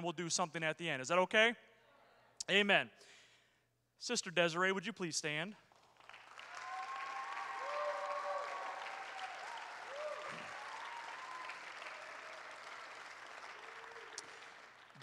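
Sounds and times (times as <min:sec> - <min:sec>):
congregation applauding: 0:05.7 - 0:15.0.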